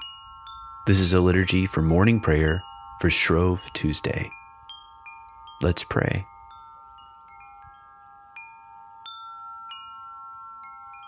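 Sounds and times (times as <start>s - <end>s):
metal chimes ringing: 0.0s - 11.0s.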